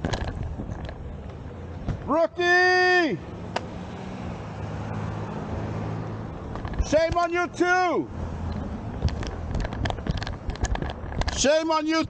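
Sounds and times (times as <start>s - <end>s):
street traffic: 0.0s - 12.0s
person shouting: 2.1s - 3.2s
car engine humming: 3.1s - 11.3s.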